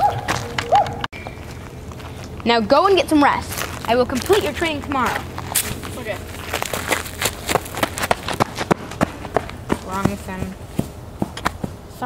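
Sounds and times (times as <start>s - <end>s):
footsteps on gravel: 0.0s - 11.9s.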